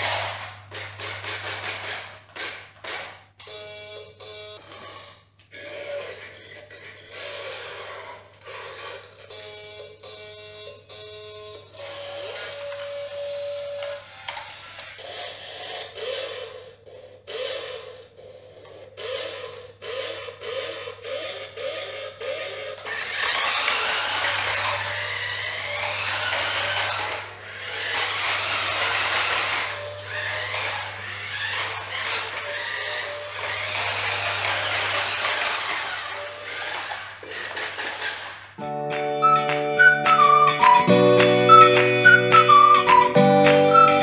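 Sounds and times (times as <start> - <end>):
toy electric motor: 0.0 - 3.2, 11.4 - 38.6
toy electronic beeps and chirps: 39.2 - 44.0.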